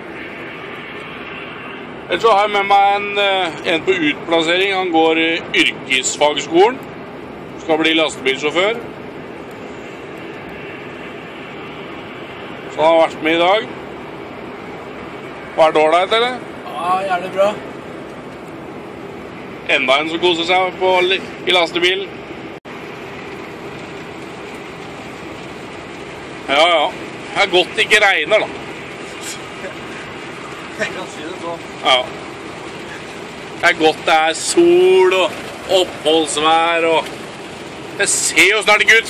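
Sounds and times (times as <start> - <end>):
truck cab noise: 0.0 - 39.0
tyres hissing on wet road: 0.0 - 39.0.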